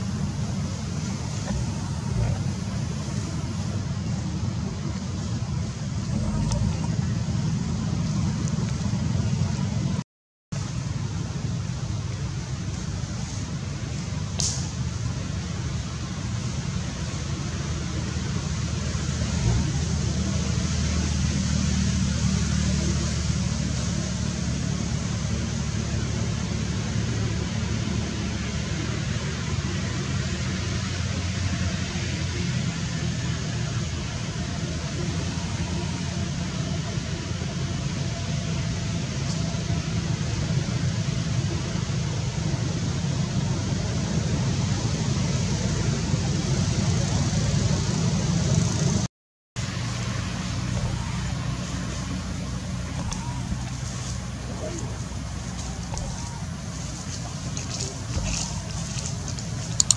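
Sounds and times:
engine rumbling: 0:00.0 - 0:59.9
even hiss: 0:10.6 - 0:48.6.

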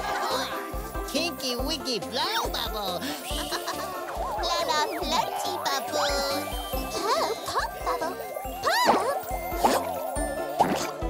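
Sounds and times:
playful cartoon music: 0:00.0 - 0:11.0
sliding-pitch sound effects: 0:03.1 - 0:11.0.

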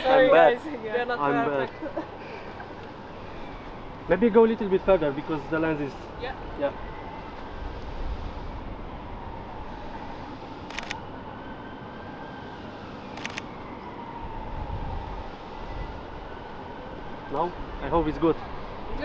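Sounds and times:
city traffic hum: 0:00.0 - 0:19.0
camera shutter clicks: 0:10.6 - 0:11.0, 0:13.1 - 0:13.5.

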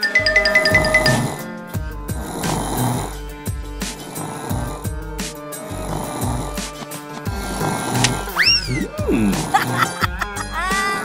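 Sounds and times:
background music: 0:00.0 - 0:11.0
cartoon snoring sound effect: 0:00.7 - 0:01.4, 0:02.1 - 0:03.2, 0:03.9 - 0:05.0, 0:05.6 - 0:10.2.

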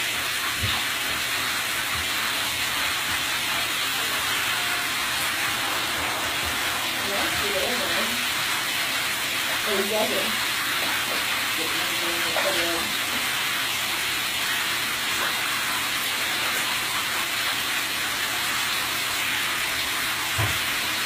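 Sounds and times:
tap water running into bathtub: 0:00.0 - 0:21.0.

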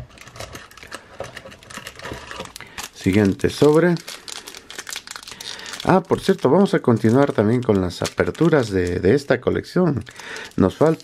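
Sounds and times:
foil pack rustling: 0:00.0 - 0:09.3, 0:10.0 - 0:11.0.

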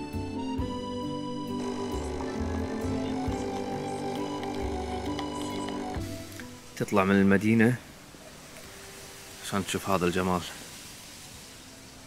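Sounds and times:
background music with held chords: 0:00.0 - 0:07.8.

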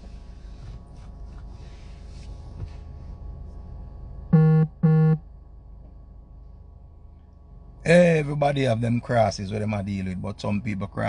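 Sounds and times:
low buzzy electronic beeps: 0:04.3 - 0:05.2.

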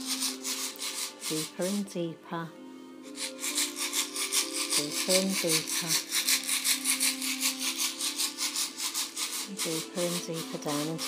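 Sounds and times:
low musical drone: 0:00.0 - 0:11.0.

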